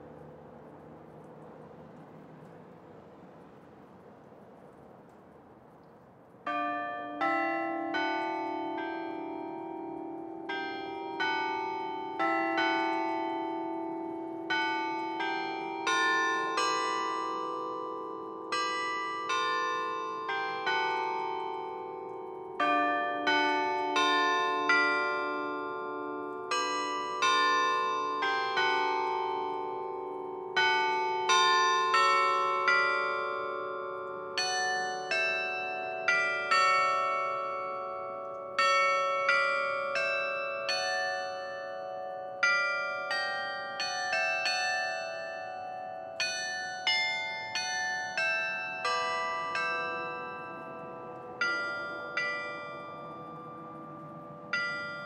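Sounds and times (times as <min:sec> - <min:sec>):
carillon bells melody: 0:00.0 - 0:02.6, 0:06.5 - 0:55.0
low bell struck repeatedly: 0:06.5 - 0:55.0.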